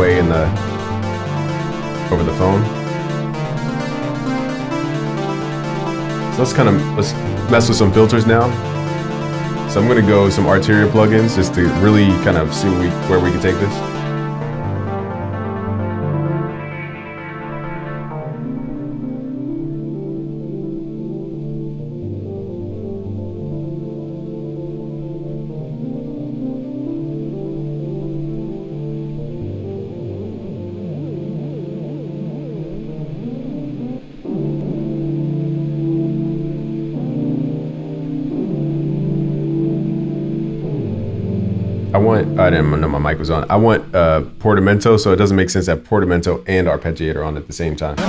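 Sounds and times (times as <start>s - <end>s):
synthesizer chords: 0.0s - 44.6s.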